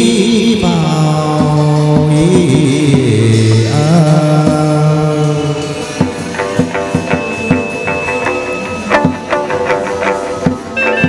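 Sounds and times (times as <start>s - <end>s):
plucked lute: 1.6s - 11.0s.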